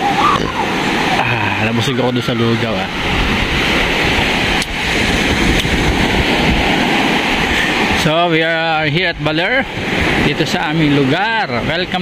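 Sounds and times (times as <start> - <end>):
ocean surf on sandy beach: 0.0 - 12.0
wind buffeting microphone: 0.0 - 12.0.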